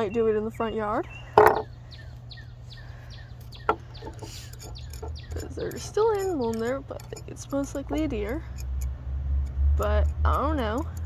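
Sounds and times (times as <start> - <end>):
birds chirping: 0.0 - 8.5
steady low hum: 0.0 - 11.0.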